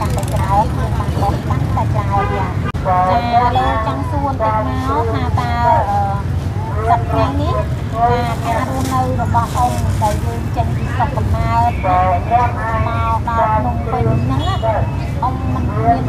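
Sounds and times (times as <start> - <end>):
person talking: 0.0 - 16.0.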